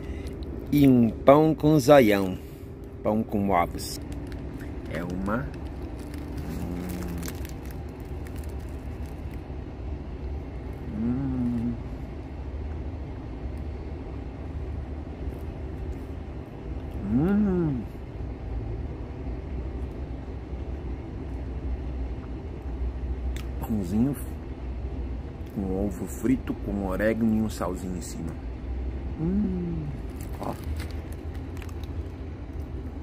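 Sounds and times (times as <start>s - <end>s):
steady low rumble: 0.0s - 33.0s
paper bag crinkling: 3.7s - 9.4s, 30.0s - 32.1s
man humming appreciatively: 10.8s - 11.9s, 17.0s - 18.0s, 29.2s - 30.0s.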